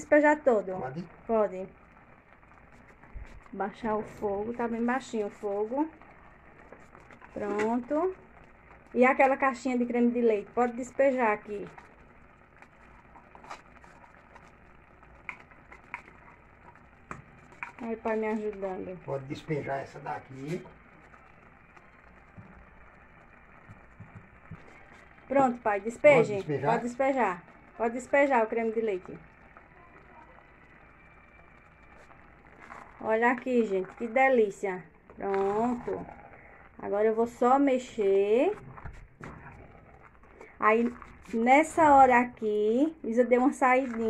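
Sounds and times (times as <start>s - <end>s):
light crackles: 0.0s - 44.0s
pot simmering: 0.0s - 44.0s.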